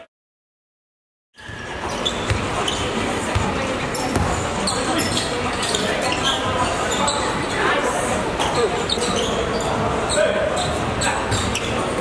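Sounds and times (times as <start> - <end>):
basketball bouncing on court: 1.4 - 5.3.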